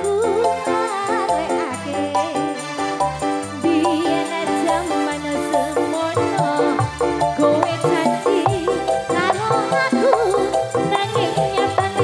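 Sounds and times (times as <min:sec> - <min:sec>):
band playing held chords: 0:00.0 - 0:12.0
person singing wavering melody: 0:00.0 - 0:12.0.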